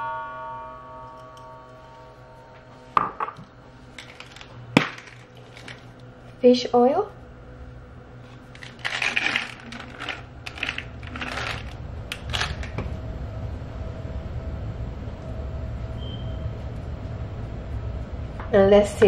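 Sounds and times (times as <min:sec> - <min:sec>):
steady low hum: 0:00.0 - 0:19.0
capsules rattling in plastic bottle: 0:08.5 - 0:12.8.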